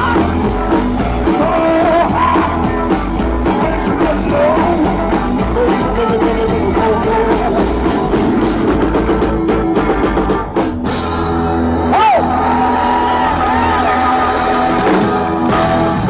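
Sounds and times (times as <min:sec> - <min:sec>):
lead guitar line bending: 0:00.0 - 0:16.0
live rock band playing: 0:00.0 - 0:16.0.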